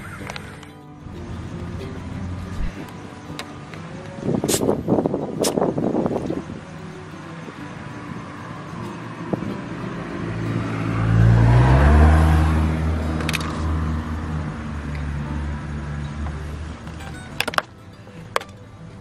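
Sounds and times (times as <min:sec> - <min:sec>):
passing vehicle engine hum: 0:00.0 - 0:19.0
air hiss: 0:04.3 - 0:05.7.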